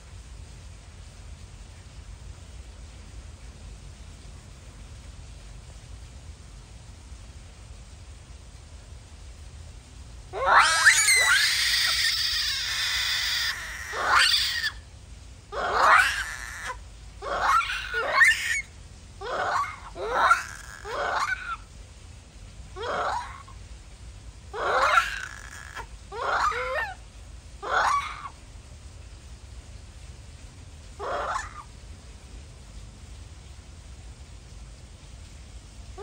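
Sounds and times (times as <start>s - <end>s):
monkeys screaming: 10.4s - 14.8s, 15.5s - 21.6s, 22.8s - 23.5s, 24.5s - 27.0s, 27.6s - 28.4s, 31.0s - 31.7s.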